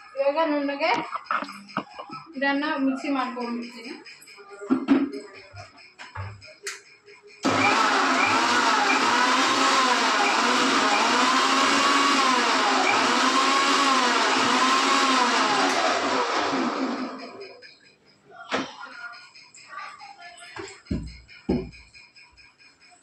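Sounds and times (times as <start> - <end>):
mixer grinder motor blending: 7.4 - 17.5.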